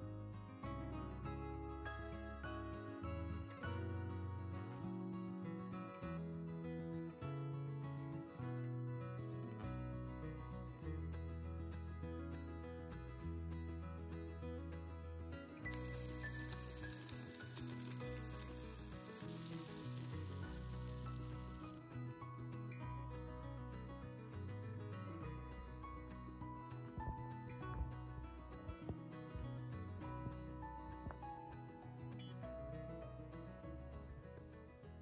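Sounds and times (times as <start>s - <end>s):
background music: 0.0s - 35.0s
food sizzling in a pan: 15.7s - 21.7s.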